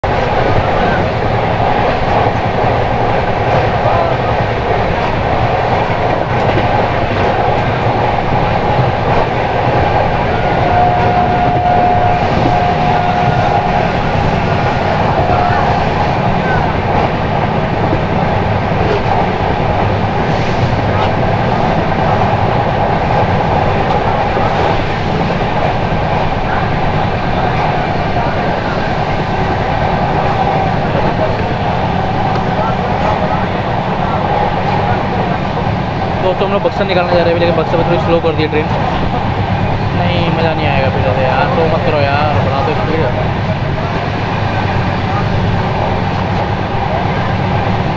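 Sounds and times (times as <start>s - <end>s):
train wheels rumbling on rails: 0.0s - 47.9s.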